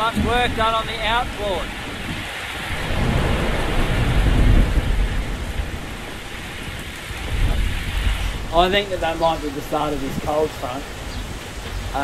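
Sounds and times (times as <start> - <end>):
deep rumble: 0.0 - 10.3
heavy rain pouring: 0.0 - 12.0.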